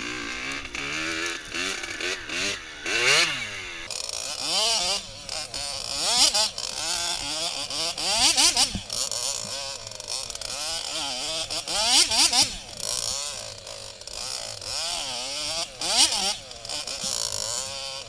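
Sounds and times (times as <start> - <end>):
two-stroke motorcycle engine revving: 0.0 - 18.0.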